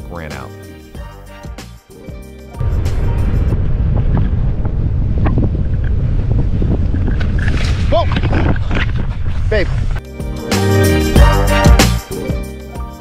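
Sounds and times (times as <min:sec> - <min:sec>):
wind buffeting microphone: 0:02.6 - 0:10.0.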